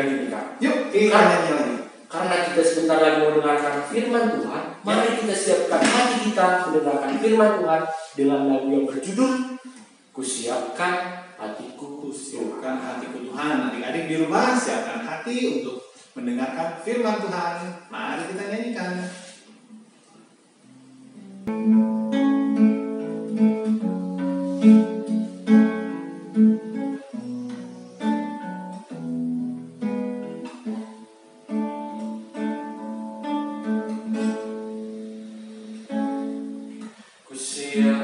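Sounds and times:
acoustic guitar playing: 0.0 - 10.1, 19.0 - 38.0
man singing: 37.5 - 38.0.

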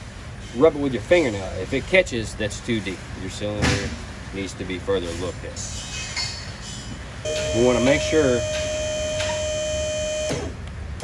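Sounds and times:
hydraulic pump whining: 7.3 - 10.6.

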